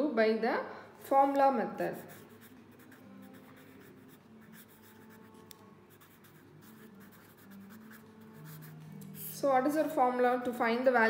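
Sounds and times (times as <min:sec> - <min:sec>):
pen scratching on paper: 0:01.9 - 0:08.9.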